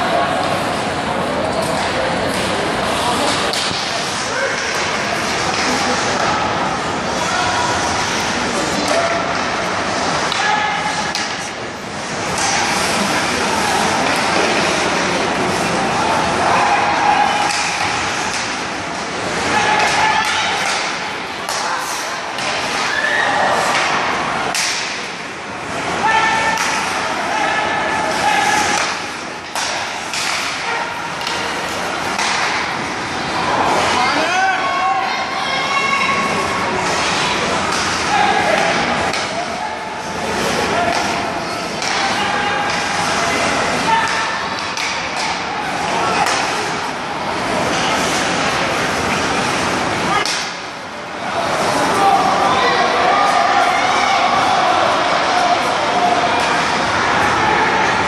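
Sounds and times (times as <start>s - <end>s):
people talking and shouting: 0.0s - 58.0s
sticks and puck clacking: 0.4s - 34.2s, 35.7s - 58.0s.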